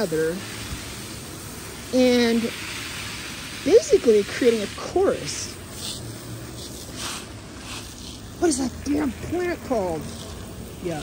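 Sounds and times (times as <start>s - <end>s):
hose spray nozzle hissing: 0.0s - 11.0s
spray pattering on soil and leaves: 0.0s - 11.0s.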